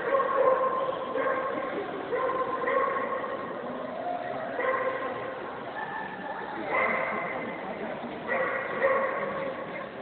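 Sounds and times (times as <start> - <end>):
dog barking and yipping: 0.0 - 3.4, 8.3 - 9.4.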